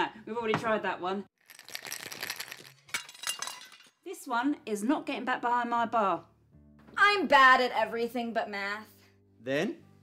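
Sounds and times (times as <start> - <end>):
ice rattling in cocktail shaker: 1.4 - 3.9
glass smashing: 1.5 - 4.0.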